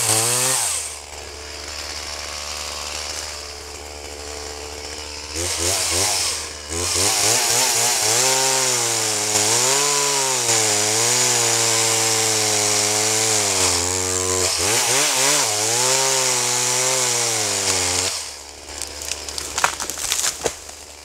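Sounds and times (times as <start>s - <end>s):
chainsaw cutting wood: 0.0s - 21.0s.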